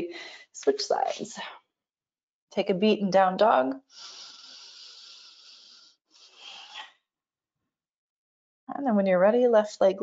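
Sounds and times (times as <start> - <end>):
person breathing: 3.9 - 6.9.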